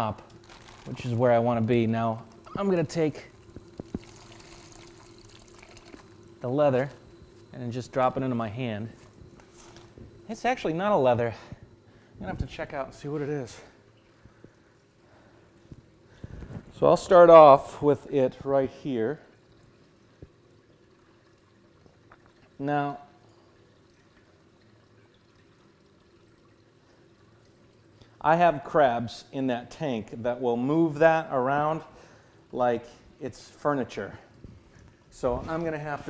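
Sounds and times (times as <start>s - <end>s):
pump humming: 0.0s - 36.0s
water trickling faintly: 0.0s - 36.0s.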